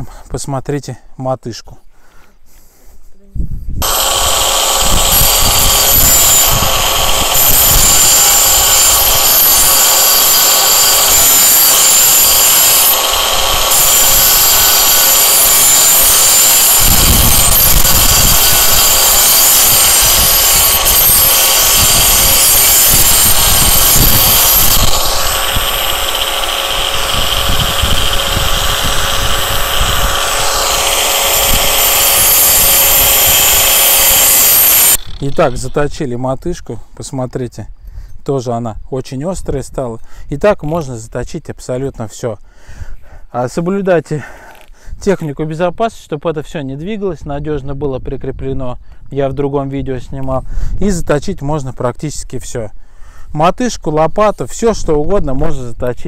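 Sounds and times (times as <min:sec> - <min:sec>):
angle grinder sharpening steel: 0:03.8 - 0:35.9.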